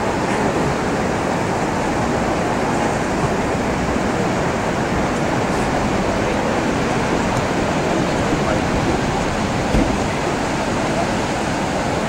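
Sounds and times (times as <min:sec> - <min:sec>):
surf breaking on beach: 0:00.0 - 0:12.0
wind on microphone: 0:00.0 - 0:12.0.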